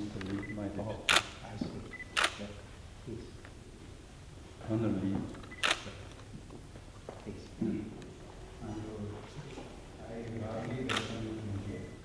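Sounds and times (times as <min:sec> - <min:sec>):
low room murmur: 0:00.0 - 0:12.0
camera shutter click: 0:01.1 - 0:01.4, 0:02.2 - 0:02.5, 0:05.5 - 0:06.0, 0:10.6 - 0:11.2.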